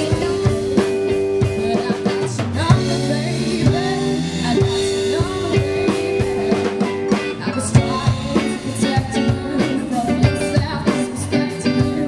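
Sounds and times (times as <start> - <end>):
bass guitar: 0.0 - 12.0
drum kit: 0.0 - 12.0
electric guitar: 0.0 - 12.0
woman singing: 0.0 - 12.0.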